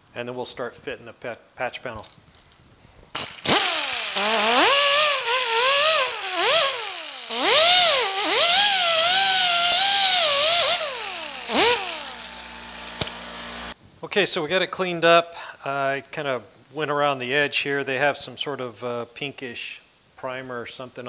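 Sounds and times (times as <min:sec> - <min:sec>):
die grinder whining: 0:03.2 - 0:13.8.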